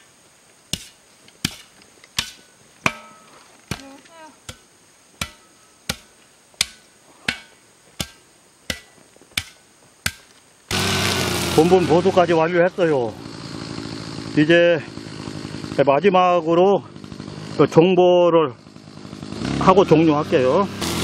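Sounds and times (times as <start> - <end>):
shovel striking loose soil: 0.7 - 11.7.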